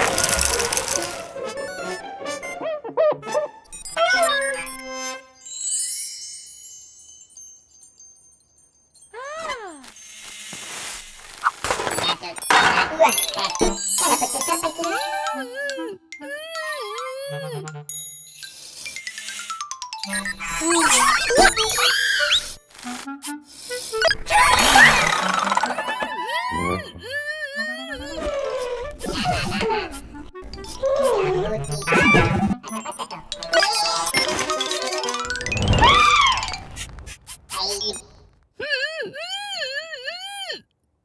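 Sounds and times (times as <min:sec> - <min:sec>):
bouncy children's music: 0:00.2 - 0:08.0, 0:12.5 - 0:22.6, 0:23.2 - 0:36.8
sing-song robot chatter: 0:19.2 - 0:22.6, 0:27.6 - 0:35.5
comic sound effects: 0:24.0 - 0:27.1, 0:30.9 - 0:38.1.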